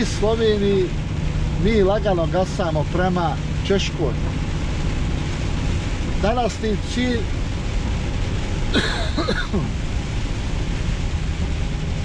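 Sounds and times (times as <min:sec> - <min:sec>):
truck engine rumble: 0:00.0 - 0:12.0
tyres hissing on wet road: 0:00.0 - 0:12.0.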